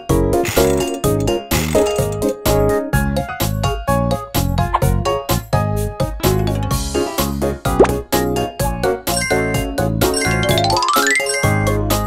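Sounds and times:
upbeat cartoon music: 0:00.0 - 0:12.0
rising run of chiming notes: 0:10.2 - 0:11.7.

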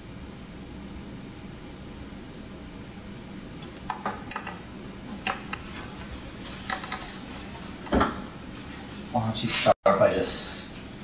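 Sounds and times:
steady hiss: 0:05.6 - 0:11.0.

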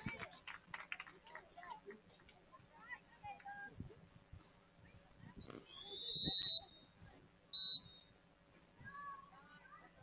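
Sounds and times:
referee's whistle blasts: 0:05.7 - 0:06.9, 0:07.5 - 0:08.1.

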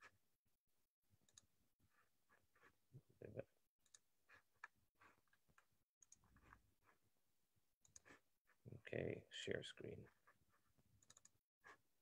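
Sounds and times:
computer mouse clicks: 0:06.0 - 0:06.6, 0:11.0 - 0:11.4.

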